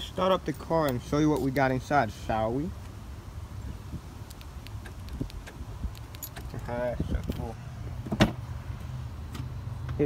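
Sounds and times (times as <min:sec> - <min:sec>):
key fob clicks: 0:04.2 - 0:06.6
wind rumble on microphone: 0:04.9 - 0:07.6
keys jingling on ring: 0:06.0 - 0:07.4.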